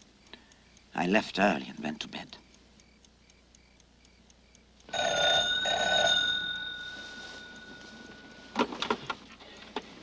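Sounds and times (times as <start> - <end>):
clock ticking: 0.0 - 9.1
telephone bell ringing: 4.9 - 8.6.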